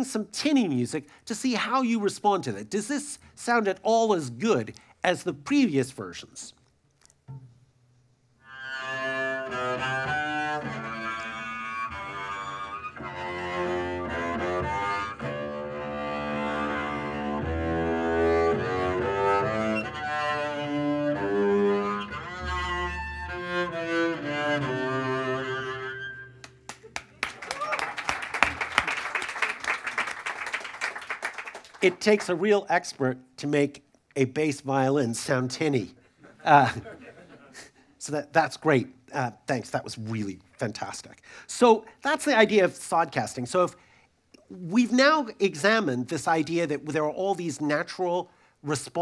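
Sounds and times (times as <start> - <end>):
tinny double bass music: 7.2 - 26.7
audience applause: 26.7 - 32.0.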